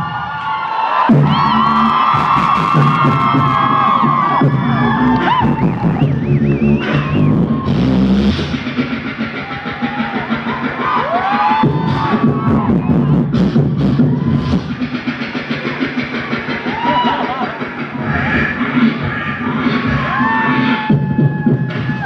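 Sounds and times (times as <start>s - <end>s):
beatboxing bass beat: 1.0s - 22.0s.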